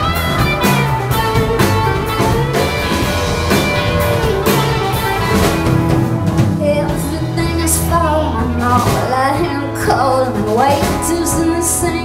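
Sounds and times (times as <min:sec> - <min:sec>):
bass guitar: 0:00.0 - 0:12.0
drum kit with cymbals: 0:00.0 - 0:12.0
electric guitars: 0:00.0 - 0:12.0
woman singing: 0:06.6 - 0:12.0.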